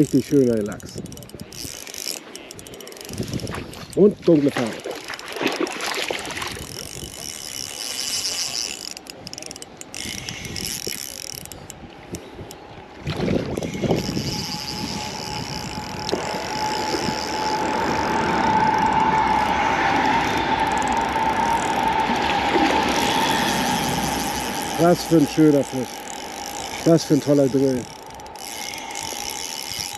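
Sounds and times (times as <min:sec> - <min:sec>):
fishing reel drag ticking: 0:00.0 - 0:29.9
fishing reel whirring: 0:00.0 - 0:29.9
fish splashing: 0:01.7 - 0:27.2.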